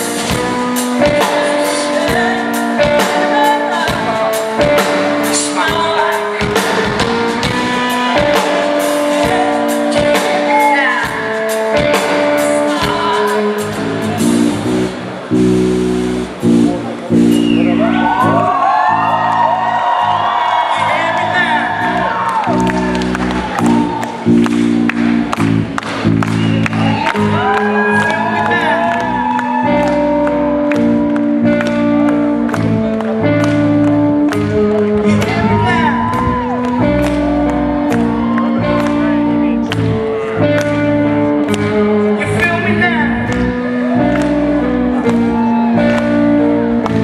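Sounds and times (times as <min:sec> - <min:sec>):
person singing: 0:00.0 - 0:14.6, 0:26.8 - 0:47.0
live band playing: 0:00.0 - 0:47.0.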